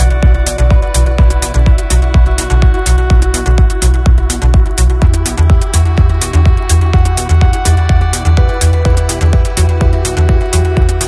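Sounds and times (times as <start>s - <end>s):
hi-hats: 0.0s - 11.0s
kick drum: 0.0s - 11.0s
pulsing bassline: 0.0s - 11.0s
synth chords: 0.0s - 11.0s.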